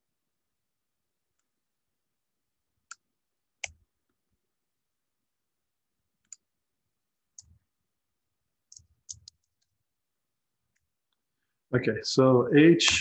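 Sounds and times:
computer keyboard typing clicks: 0:08.7 - 0:09.7.

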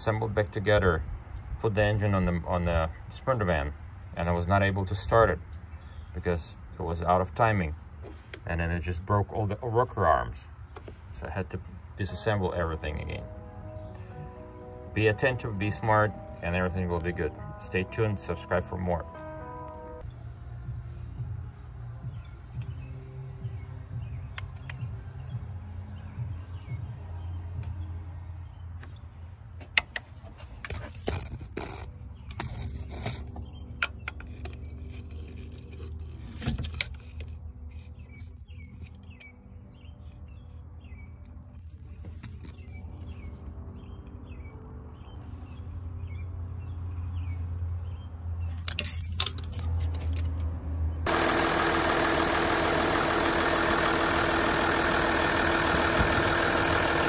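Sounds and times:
tool handling clicks and knocks: 0:29.6 - 0:39.4, 0:48.5 - 0:50.6
diesel engine idling: 0:51.0 - 0:57.0.

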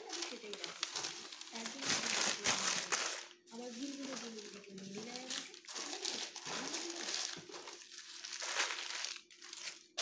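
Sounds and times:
paper crinkling: 0:00.0 - 0:10.0.

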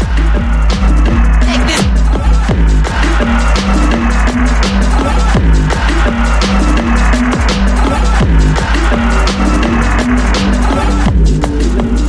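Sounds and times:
fast heavy kick drum: 0:00.0 - 0:12.0
stepping bassline: 0:00.0 - 0:12.0.

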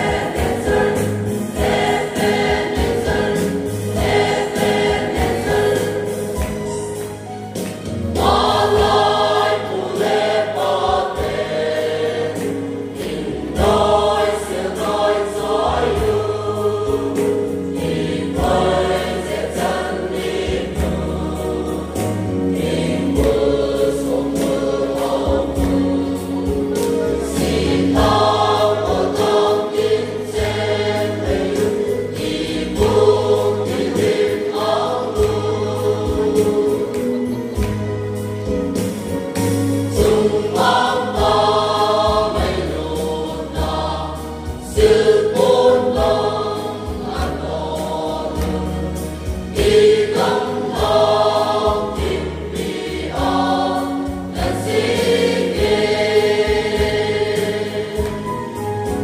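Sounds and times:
mixed choir singing gospel: 0:00.0 - 0:59.0.

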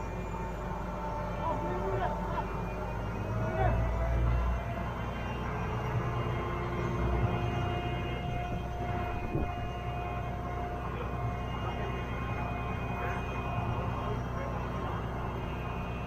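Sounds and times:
crane diesel engine running: 0:00.0 - 0:16.0
steady engine whine: 0:00.0 - 0:16.0.

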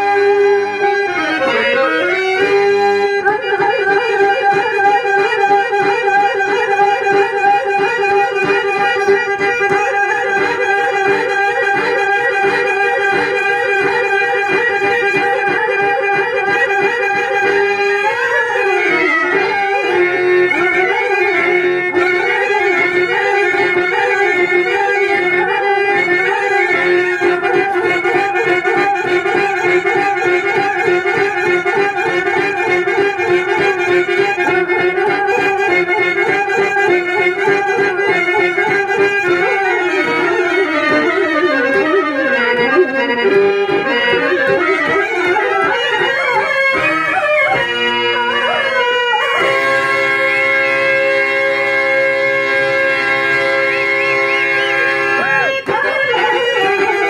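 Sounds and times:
harmonium music with drone: 0:00.0 - 0:57.0.

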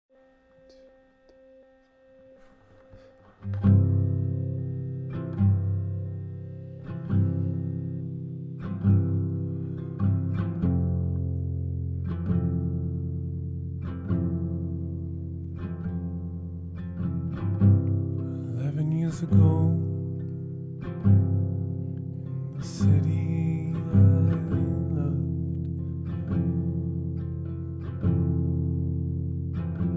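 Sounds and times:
guitar chords ringing: 0:00.1 - 0:29.9.

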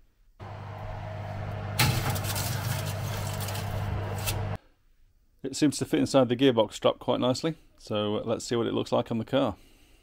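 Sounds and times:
electric oven motor hum: 0:00.4 - 0:04.6
metal tray rattling: 0:01.8 - 0:03.7.

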